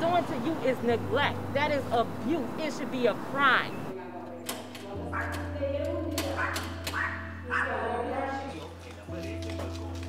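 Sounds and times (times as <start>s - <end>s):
dog barking: 6.4s - 7.9s.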